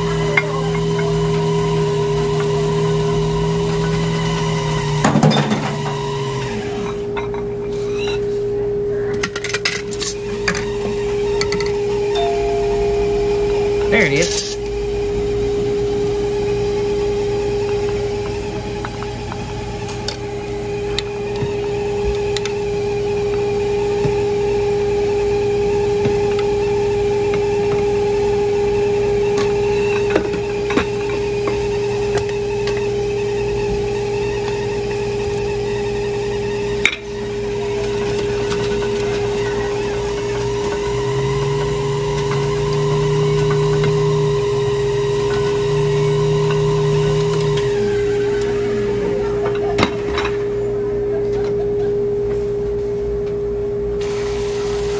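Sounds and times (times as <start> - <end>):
steady machine hum: 0.0 - 54.9
lower hum: 10.2 - 18.6, 36.7 - 54.1.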